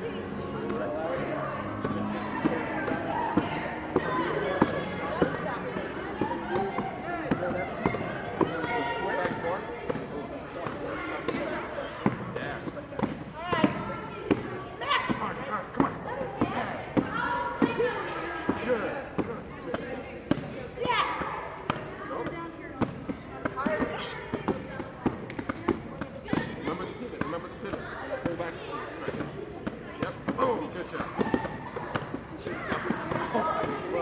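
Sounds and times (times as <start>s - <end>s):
children's voices chattering: 0.0s - 34.0s.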